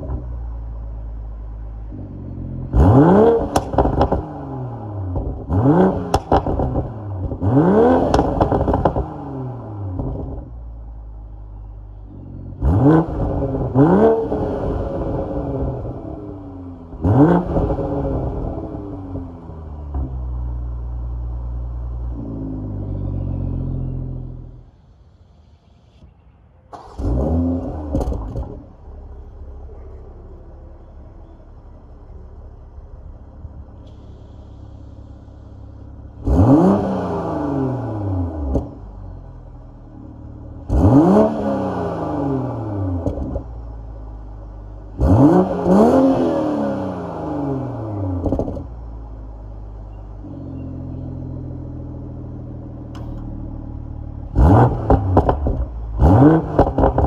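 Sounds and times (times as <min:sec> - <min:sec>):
car engine revving and idling: 0:00.0 - 0:26.1, 0:26.7 - 0:57.0.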